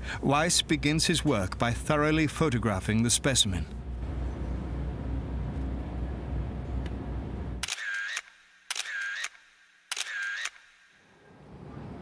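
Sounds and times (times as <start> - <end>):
steady low rumble: 3.8 - 7.6
camera shutter click with whine: 7.6 - 10.9.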